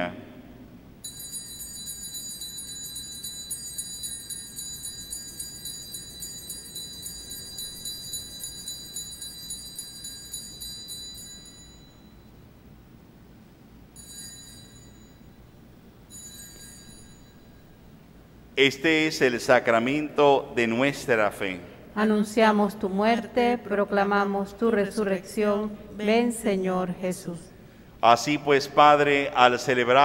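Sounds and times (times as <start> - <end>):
altar bells jingling: 1.0 - 12.3, 14.0 - 15.4, 16.1 - 17.9.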